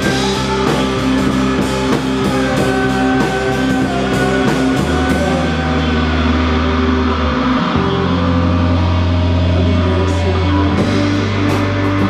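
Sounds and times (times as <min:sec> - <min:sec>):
bass guitar held notes: 0:00.0 - 0:12.0
electric guitars sustained notes: 0:00.0 - 0:12.0.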